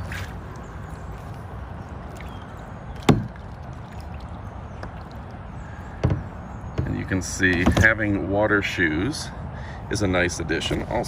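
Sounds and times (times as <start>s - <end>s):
low rumble of water: 0.0s - 8.0s
paddle knocking kayak hull: 3.0s - 3.9s, 5.9s - 8.0s.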